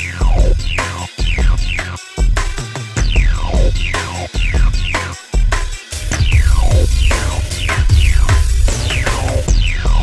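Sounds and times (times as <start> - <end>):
electronic music with heavy bass: 0.0 - 10.0.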